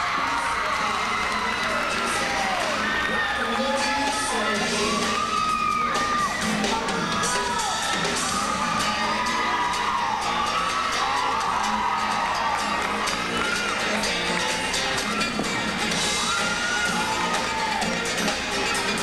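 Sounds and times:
crowd cheering and shouting: 0.0s - 19.0s
show music: 0.0s - 19.0s.

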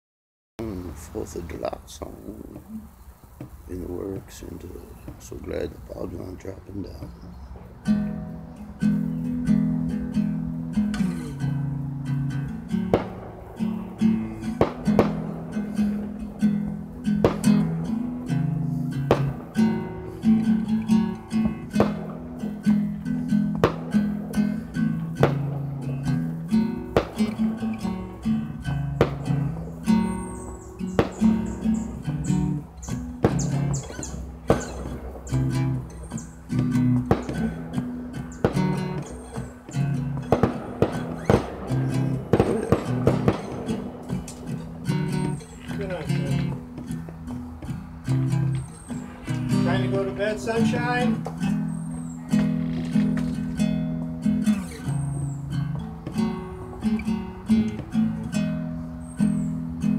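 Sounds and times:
acoustic guitar strumming: 0.6s - 59.9s.

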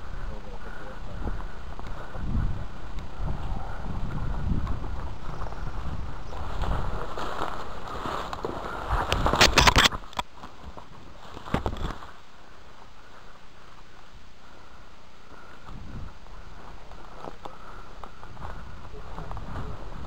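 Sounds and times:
wind rumble on microphone: 0.0s - 12.0s, 15.4s - 20.0s
branches rustling and crackling: 0.0s - 20.0s
footsteps in undergrowth: 1.1s - 20.0s.

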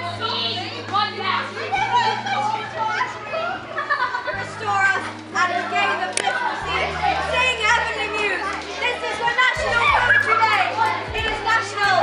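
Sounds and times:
babble of young voices: 0.0s - 12.0s
background music of low notes: 0.0s - 12.0s.

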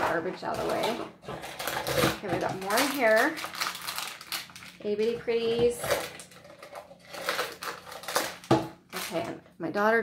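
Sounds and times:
plastic wrapper crinkling: 0.4s - 9.4s.

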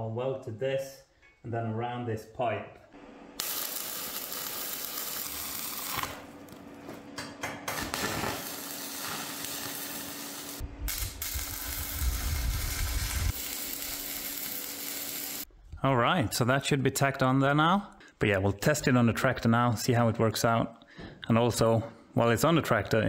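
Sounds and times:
welding arc crackling and sizzling: 3.4s - 6.8s, 7.7s - 15.5s.

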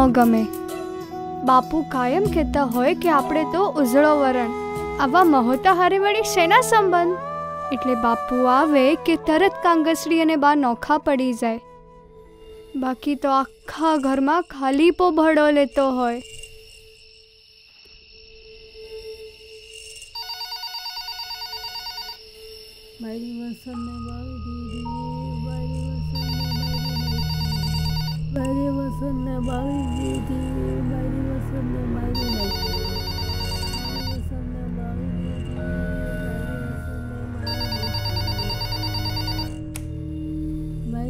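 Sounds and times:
background music: 0.0s - 17.6s, 18.4s - 41.0s
telephone warbling ring: 20.2s - 22.2s, 25.8s - 28.4s, 32.2s - 34.2s, 36.0s - 39.7s.

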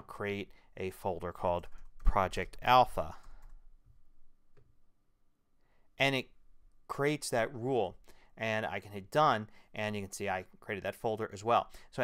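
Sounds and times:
faint keyboard typing clicks: 3.1s - 3.6s.

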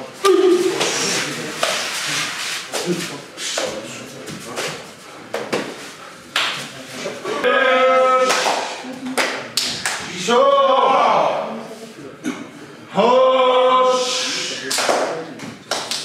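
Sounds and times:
long shouted call: 7.4s - 8.4s.

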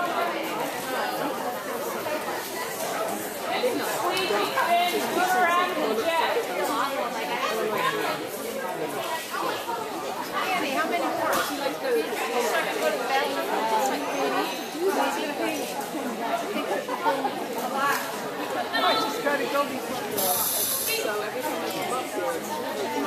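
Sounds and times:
chatter of overlapping voices: 0.0s - 23.0s.

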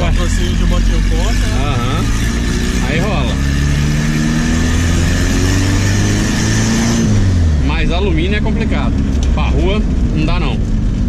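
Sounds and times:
car engine revving from inside cabin: 0.0s - 9.2s.

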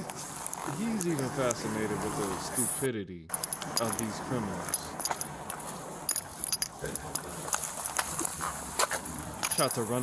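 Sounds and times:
metal keys jingling: 3.3s - 8.4s
footsteps walking: 7.1s - 9.4s.

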